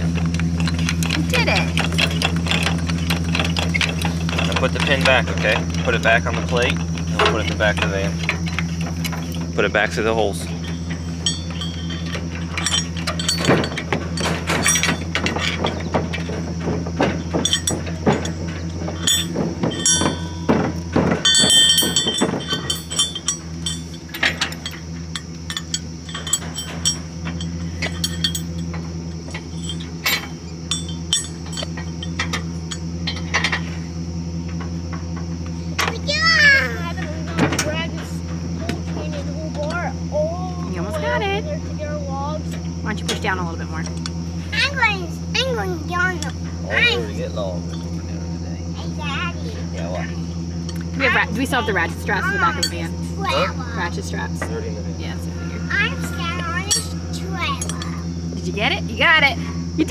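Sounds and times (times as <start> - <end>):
steady low hum: 0.0 - 59.9
light metal clinks: 10.5 - 16.3, 17.4 - 33.8, 50.6 - 53.1, 56.4 - 58.1.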